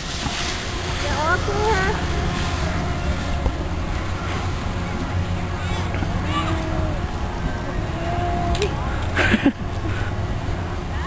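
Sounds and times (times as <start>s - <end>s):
wind rumble on microphone: 0.0s - 11.0s
faint voices: 0.9s - 11.0s.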